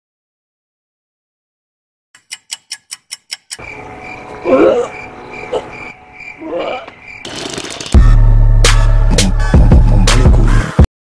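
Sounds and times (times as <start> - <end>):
clock ticking quickly: 2.2 - 3.7.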